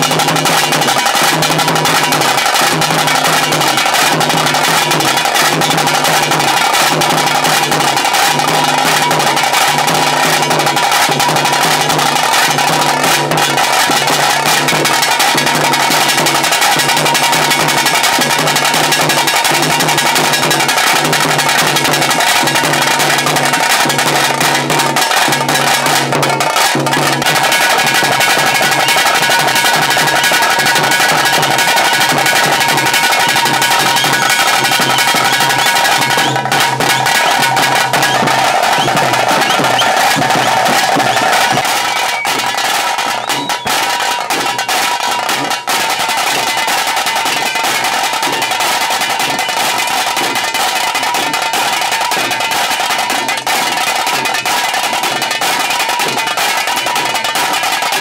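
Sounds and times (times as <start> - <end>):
dense drum roll: 0.0 - 45.6
low pulsing drum beat: 0.0 - 45.6
drum band playing: 0.0 - 58.0.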